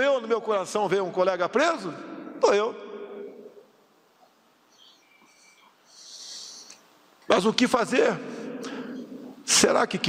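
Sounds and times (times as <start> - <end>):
soft hissing breath: 4.7 - 7.0.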